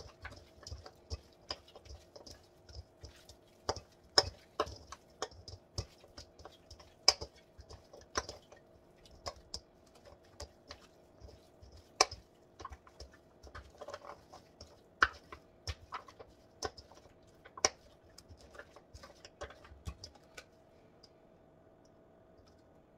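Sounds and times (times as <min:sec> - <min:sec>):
meat tossed in metal bowl: 0:00.0 - 0:20.6.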